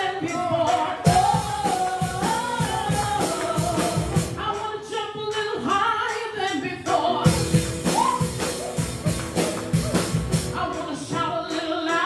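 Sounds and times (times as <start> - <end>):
women singing into microphones: 0.0 - 8.2, 10.5 - 12.0.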